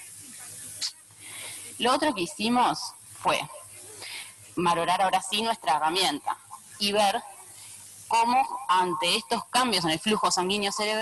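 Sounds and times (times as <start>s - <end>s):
background hiss: 0.0s - 11.0s
woman talking: 1.3s - 7.3s, 8.1s - 11.0s.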